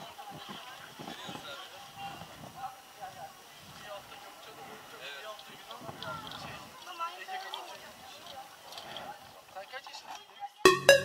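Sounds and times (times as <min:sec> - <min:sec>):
electronic dance music: 0:10.7 - 0:11.0.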